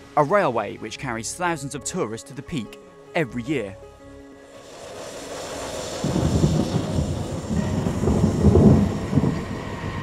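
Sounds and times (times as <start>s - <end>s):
steam locomotive rumbling: 4.4s - 10.0s.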